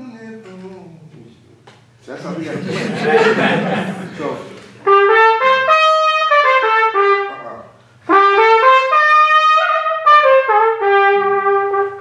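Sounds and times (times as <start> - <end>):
solo trumpet playing: 4.8 - 12.0.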